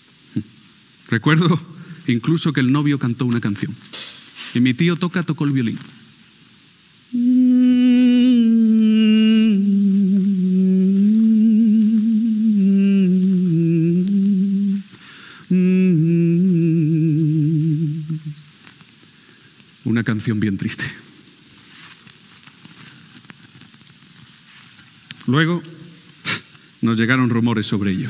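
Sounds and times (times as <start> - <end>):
man singing wordless melody: 7.2 - 18.4.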